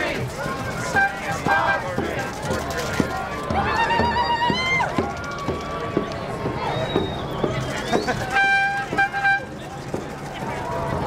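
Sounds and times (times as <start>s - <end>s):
crowd chatter: 0.0s - 11.0s
horn toots: 8.2s - 9.7s.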